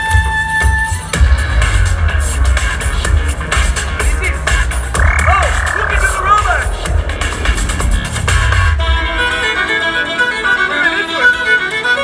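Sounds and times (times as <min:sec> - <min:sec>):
steady bass beat: 0:01.2 - 0:10.6
warbling cartoon sound effect: 0:04.9 - 0:07.0.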